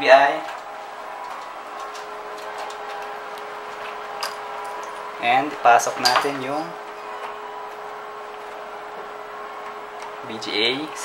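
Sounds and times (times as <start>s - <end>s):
computer hum: 0.0s - 11.0s.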